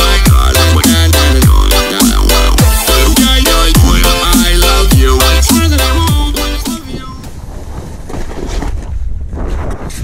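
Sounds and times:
wind buffeting microphone: 6.9 - 10.0.

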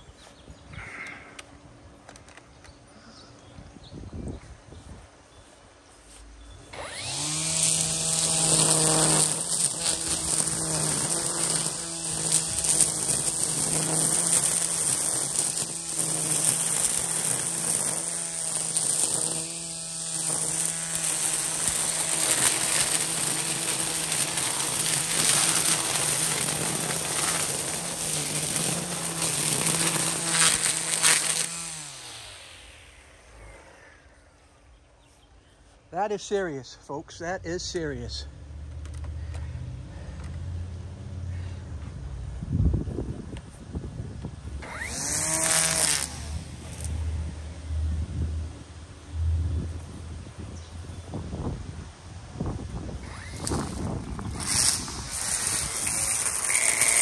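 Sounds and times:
string trimmer cutting weeds: 6.6 - 34.1, 44.5 - 48.5, 52.4 - 57.0
trimmer line slapping foliage: 6.7 - 33.5, 44.6 - 47.6, 52.7 - 57.0.

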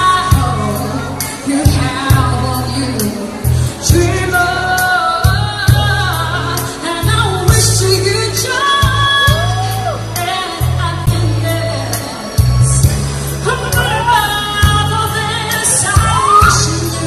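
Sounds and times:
backing track with bass and drums: 0.0 - 17.0
woman singing into microphone: 0.0 - 17.0.

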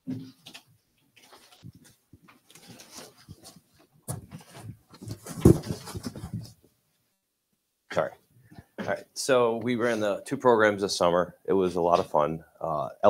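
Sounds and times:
cardboard rustling and knocking: 2.5 - 6.6.

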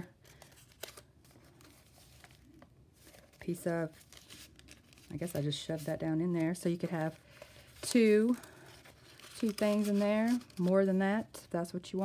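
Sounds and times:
paper pages turning: 0.0 - 11.3.

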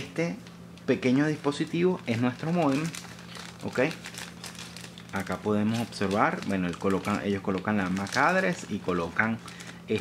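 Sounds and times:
plastic bag crinkling: 0.4 - 10.0.

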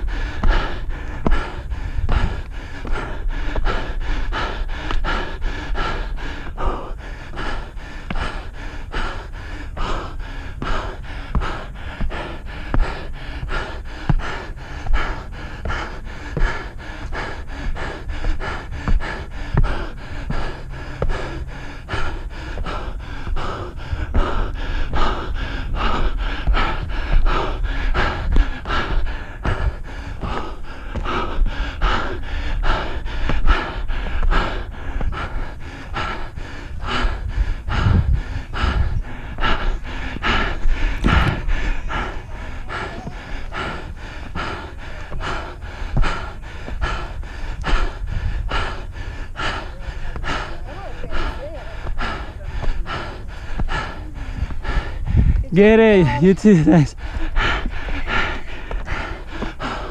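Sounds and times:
rapid panting: 0.0 - 59.9.

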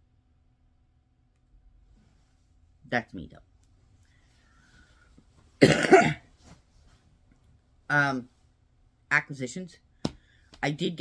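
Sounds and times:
woman coughing harshly: 5.6 - 6.3.

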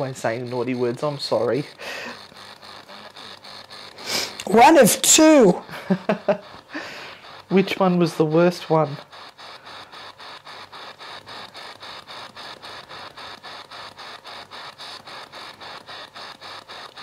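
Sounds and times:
rapid chopping radio static: 0.0 - 17.0.

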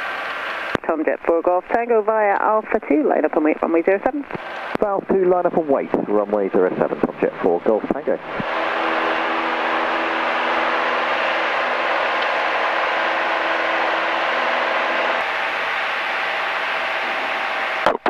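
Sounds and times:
aircraft engine and propeller drone: 2.3 - 17.8
rushing noise: 7.4 - 18.0.

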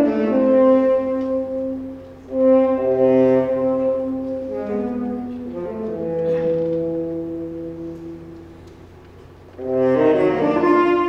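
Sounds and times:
tenor saxophone solo: 0.0 - 11.0
wind band playing: 0.0 - 11.0.

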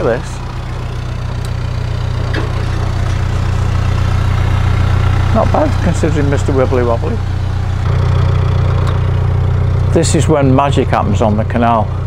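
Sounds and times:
boat engine ticking over: 0.0 - 12.0.

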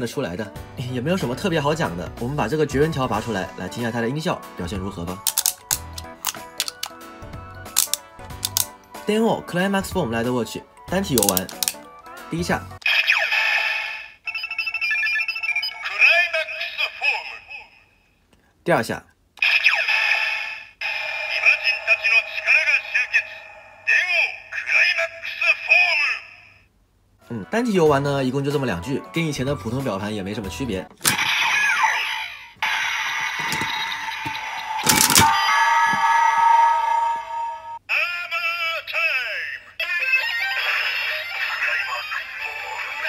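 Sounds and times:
toy belt clicks: 5.2 - 7.0, 7.7 - 8.7, 11.2 - 11.8, 34.8 - 35.3
toy belt electronic music: 5.2 - 7.0, 7.7 - 8.7, 11.1 - 11.8, 33.0 - 35.3
toy electronic jingle: 14.3 - 16.0.

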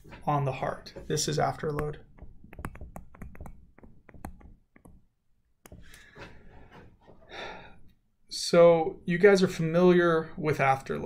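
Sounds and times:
stylus clicking on tablet screen: 1.6 - 6.0.

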